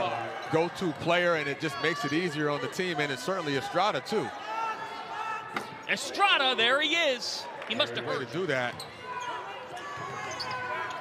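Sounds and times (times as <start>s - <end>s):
voices in an arena: 0.0s - 11.0s.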